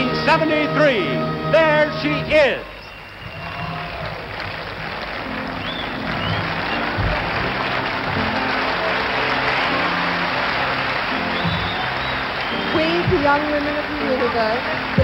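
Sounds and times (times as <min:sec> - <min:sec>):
audience applauding: 0:02.4 - 0:15.0.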